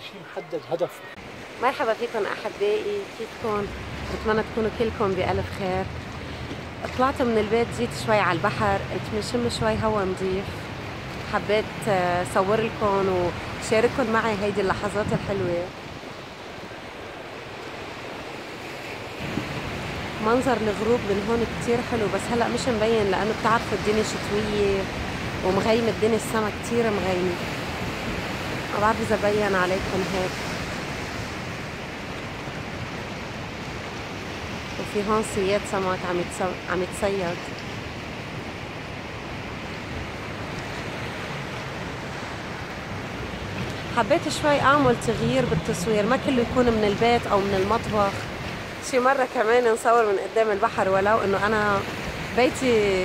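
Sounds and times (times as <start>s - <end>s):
surf washing over rocks: 0.0s - 53.0s.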